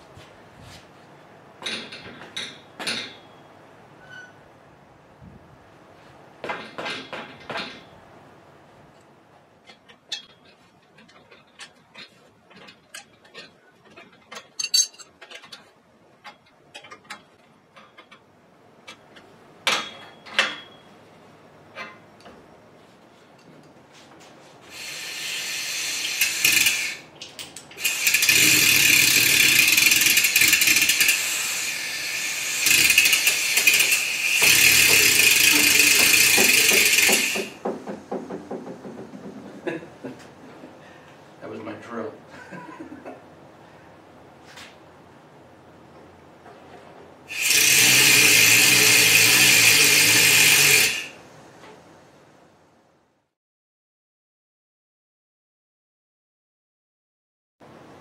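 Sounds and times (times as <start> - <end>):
air hoist motor hissing: 24.7 - 27.1, 27.8 - 37.8, 47.3 - 51.2
wrench clicking and tapping metal: 26.0 - 31.2, 32.6 - 37.6.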